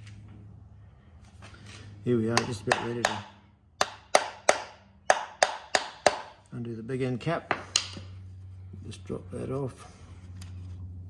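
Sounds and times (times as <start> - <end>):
hammer tapping on metal: 2.3 - 6.4.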